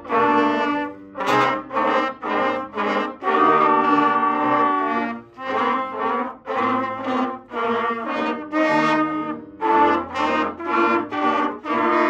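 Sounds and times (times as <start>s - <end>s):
brass ensemble playing: 0.0s - 12.0s.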